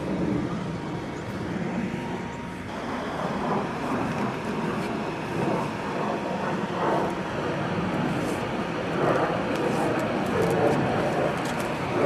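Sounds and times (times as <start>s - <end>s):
blower fan whirring: 0.0s - 12.0s.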